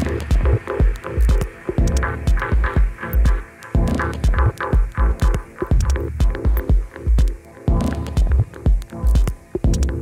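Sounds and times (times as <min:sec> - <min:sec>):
minimal techno music: 0:00.0 - 0:10.0.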